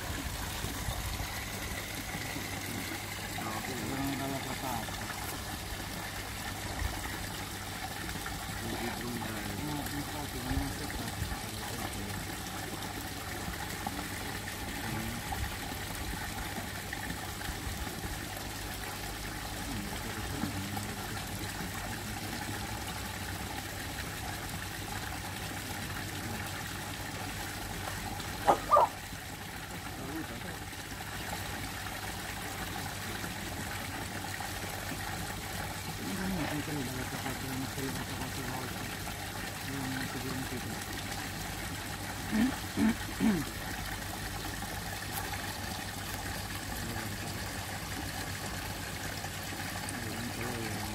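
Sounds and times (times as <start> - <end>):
water trickling into pond: 0.0 - 50.9.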